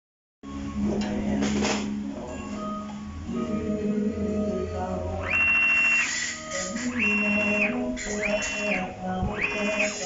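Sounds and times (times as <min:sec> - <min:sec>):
motor whine: 0:05.1 - 0:10.0.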